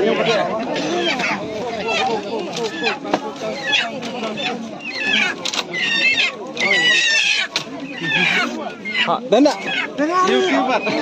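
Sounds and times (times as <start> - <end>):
people's voices: 0.0 - 11.0
animal squealing: 0.8 - 11.0.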